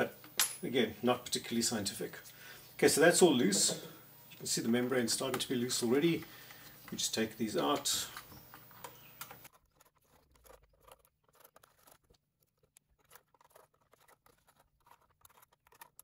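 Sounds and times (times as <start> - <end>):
small metal screws clicking: 7.7 - 16.0.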